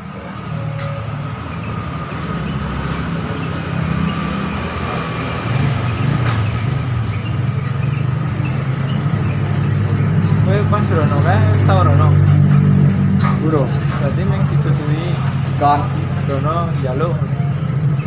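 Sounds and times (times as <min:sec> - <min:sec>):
vehicle engine humming: 0:00.0 - 0:18.0.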